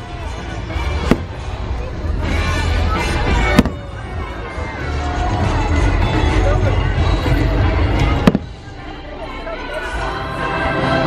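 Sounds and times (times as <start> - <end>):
fireworks bursts and crackle: 0.0 - 6.0, 8.0 - 8.8
sharp loud firework bang: 1.0 - 1.4, 3.6 - 3.8, 8.2 - 8.5.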